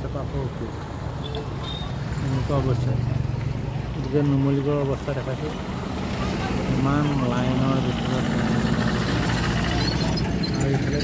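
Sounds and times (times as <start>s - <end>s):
vehicle engines in traffic: 0.0s - 11.0s.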